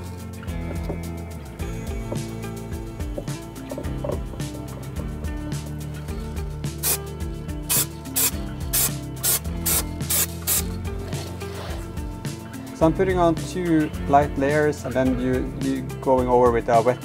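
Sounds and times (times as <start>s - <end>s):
background music: 0.0s - 17.0s
aerosol spray bursts: 6.8s - 7.1s, 7.7s - 10.7s.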